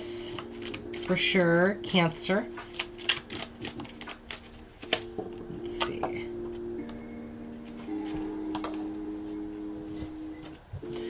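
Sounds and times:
cards being shuffled: 0.2s - 1.2s, 2.5s - 6.0s.

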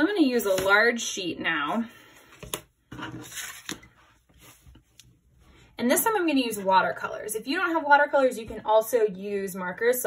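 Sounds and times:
paper rustling: 2.1s - 5.0s.

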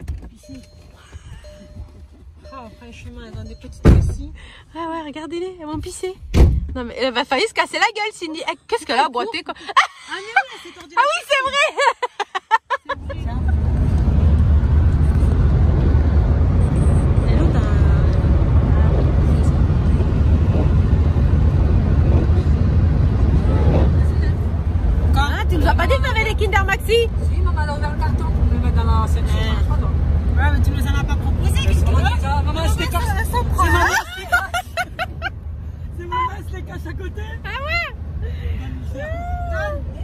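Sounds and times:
car cabin rumble: 0.0s - 4.9s, 12.8s - 40.0s
people laughing: 11.6s - 13.4s, 33.6s - 35.3s
people talking: 25.1s - 34.7s.

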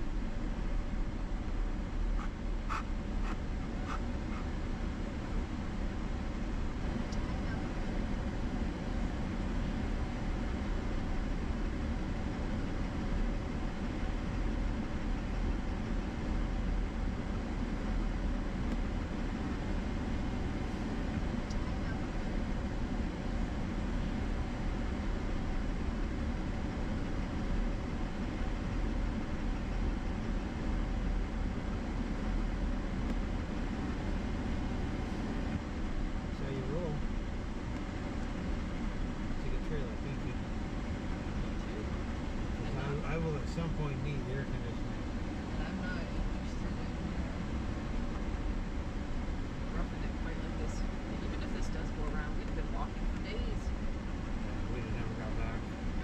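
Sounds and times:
tyre and engine noise inside truck: 0.0s - 56.0s.

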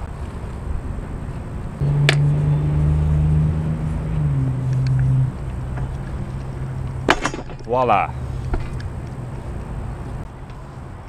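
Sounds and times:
constant low rumble: 0.0s - 10.8s.

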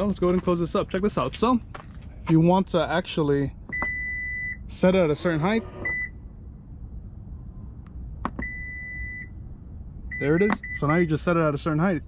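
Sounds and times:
liftgate buzzer beep: 3.8s - 4.6s, 5.6s - 6.2s, 8.4s - 9.3s.

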